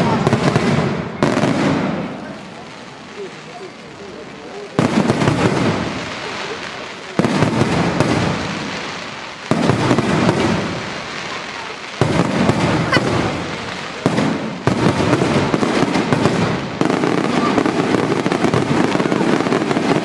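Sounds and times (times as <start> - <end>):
firework crackling: 0.0 - 20.0
firework shells bursting: 4.7 - 20.0.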